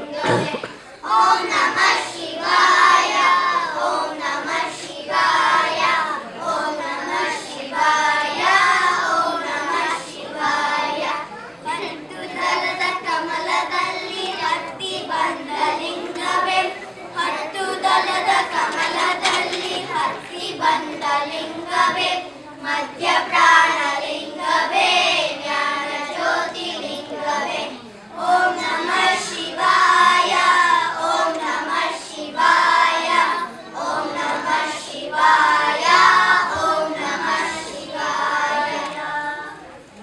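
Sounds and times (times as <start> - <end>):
children singing in unison: 0.0 - 39.7.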